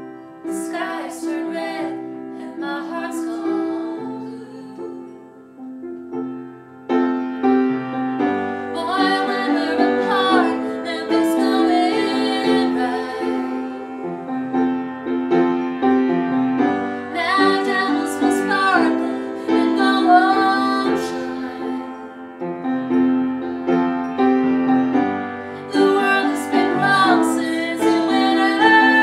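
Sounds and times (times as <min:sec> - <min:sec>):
upright piano chords: 0:00.0 - 0:29.0
women singing: 0:00.4 - 0:05.4, 0:08.6 - 0:14.4, 0:16.9 - 0:22.4, 0:25.5 - 0:29.0.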